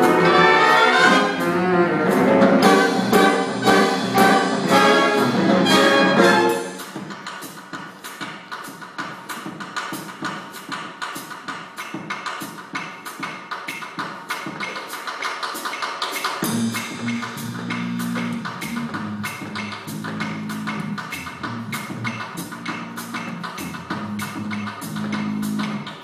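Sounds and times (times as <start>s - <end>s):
low held band notes: 0.0s - 6.8s, 16.4s - 25.9s
jazz ensemble playing: 0.0s - 7.0s, 16.4s - 26.0s
drums keeping steady beat: 0.0s - 26.0s.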